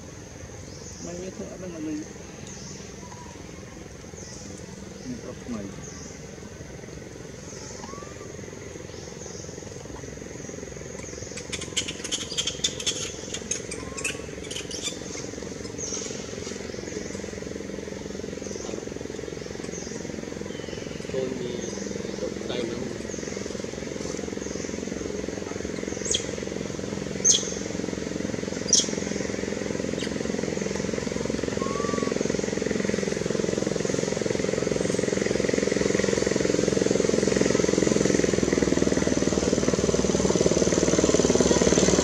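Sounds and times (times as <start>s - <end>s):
distant traffic hum: 0.0s - 42.0s.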